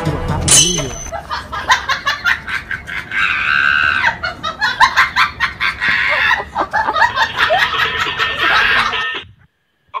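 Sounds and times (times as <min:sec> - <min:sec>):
high-pitched cackling laughter: 0:01.1 - 0:09.3.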